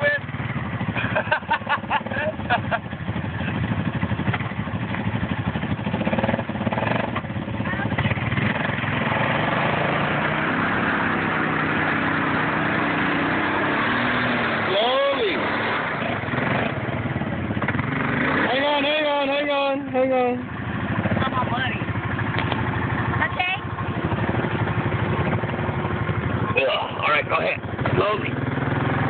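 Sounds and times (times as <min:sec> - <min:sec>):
atv engine running hard: 0:00.0 - 0:29.0.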